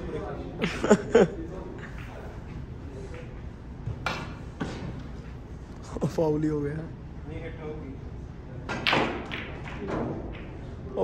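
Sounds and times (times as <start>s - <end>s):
snooker balls knocking: 8.7s - 11.0s.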